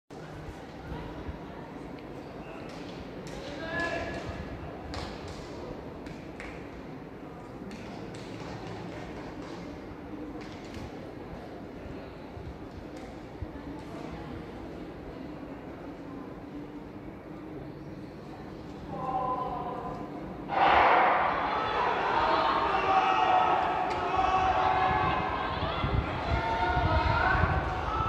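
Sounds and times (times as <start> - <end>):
distant voices chattering: 0.1 - 28.0
steady background hum: 0.2 - 28.0.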